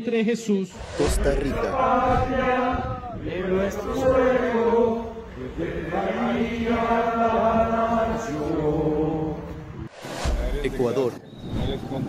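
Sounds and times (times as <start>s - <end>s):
men reciting prayer in unison: 1.0s - 9.8s.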